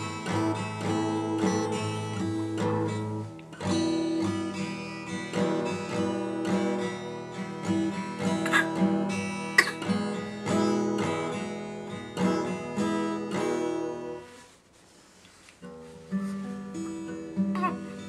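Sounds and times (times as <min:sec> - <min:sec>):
acoustic guitar strumming: 0:00.0 - 0:14.6, 0:15.6 - 0:18.0.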